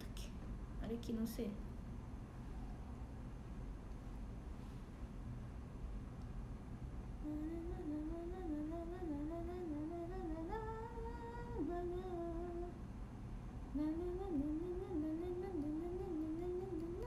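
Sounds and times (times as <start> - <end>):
young woman humming: 7.2 - 12.8, 13.8 - 17.0.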